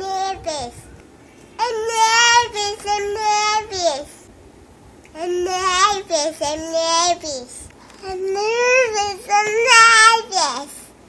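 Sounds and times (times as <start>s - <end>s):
toddler girl sing-songing: 0.0s - 0.8s, 1.6s - 4.2s, 5.1s - 10.9s.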